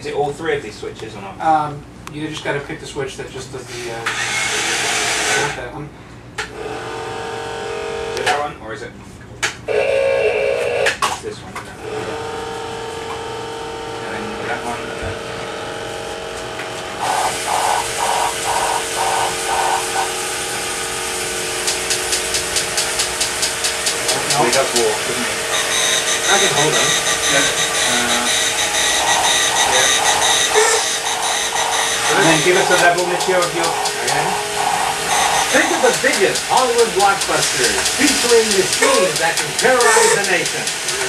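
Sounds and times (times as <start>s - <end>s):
steady pitched tone: 16.8s - 41.0s
pulsing electronic sound: 17.0s - 41.0s
toy robot motors whirring: 17.0s - 41.0s.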